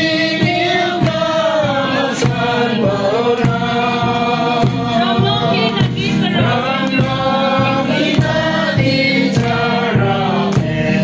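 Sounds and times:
group of voices singing: 0.0s - 11.0s
steady beat: 0.0s - 11.0s.

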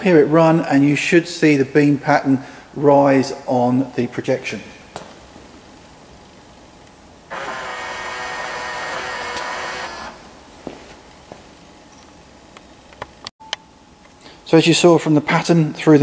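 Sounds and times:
electric motor whirring: 7.3s - 10.2s.

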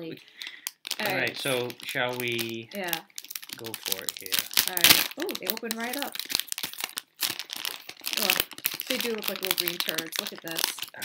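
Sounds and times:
candy wrapper crinkling: 0.3s - 11.0s.

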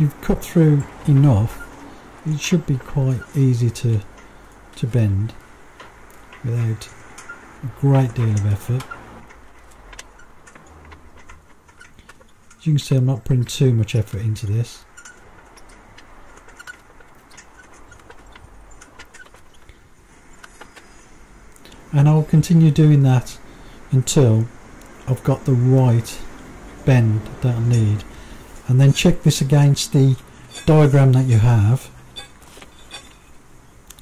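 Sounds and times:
low background hum: 0.0s - 34.0s
metal clicking and tapping: 3.9s - 7.4s, 8.1s - 12.7s, 14.9s - 20.9s.

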